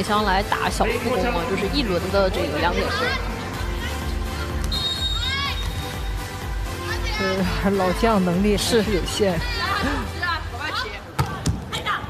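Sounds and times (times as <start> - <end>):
background music with low beat: 0.0 - 10.1.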